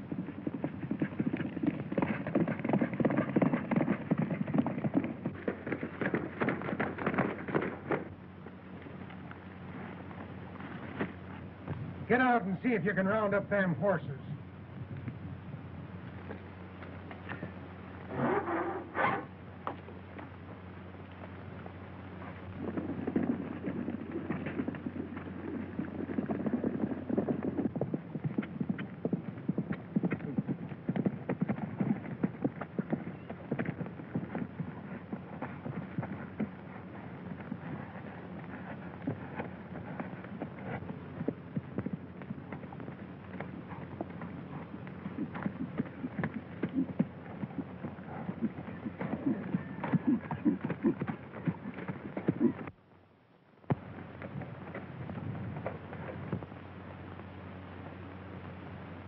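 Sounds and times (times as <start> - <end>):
horses' hoofbeats: 0.0 - 52.9, 53.6 - 59.0
steady low hum: 0.0 - 59.0.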